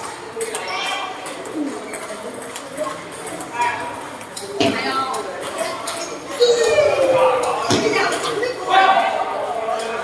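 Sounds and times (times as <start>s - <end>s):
players chattering: 0.0s - 10.0s.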